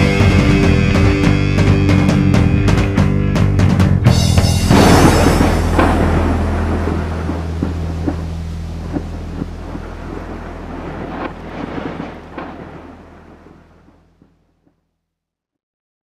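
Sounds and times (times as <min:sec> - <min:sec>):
scattered drum hits: 0:00.0 - 0:09.8
rock band sustained chord: 0:00.0 - 0:13.7.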